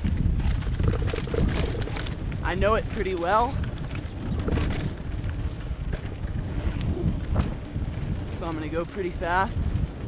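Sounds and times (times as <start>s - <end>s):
bike clicks and rattles: 0.0s - 10.0s
tyres rumbling on dirt: 0.0s - 10.0s
wind buffeting microphone: 0.0s - 10.0s.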